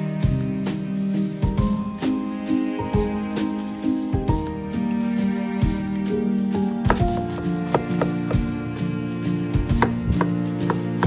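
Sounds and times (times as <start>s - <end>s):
knife chopping on wooden board: 6.8s - 8.4s, 9.7s - 11.0s.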